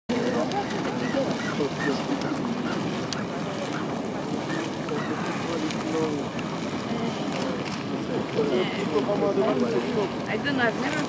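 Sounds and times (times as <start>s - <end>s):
geyser hissing and splashing: 0.1s - 11.0s
people chattering: 0.1s - 11.0s.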